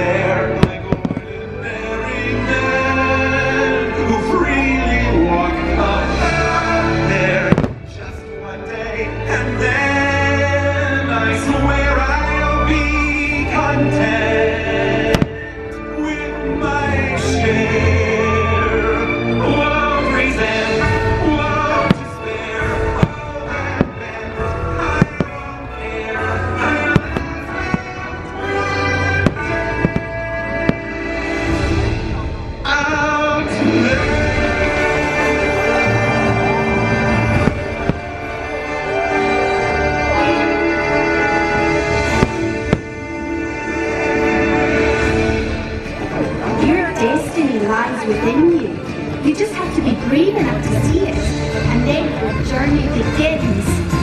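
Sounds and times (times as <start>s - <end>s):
loud music: 0.0s - 54.0s
fireworks bangs: 0.5s - 1.7s, 7.2s - 8.3s, 15.1s - 15.6s, 21.3s - 32.0s, 35.7s - 45.1s
fireworks shells bursting: 29.0s - 30.9s.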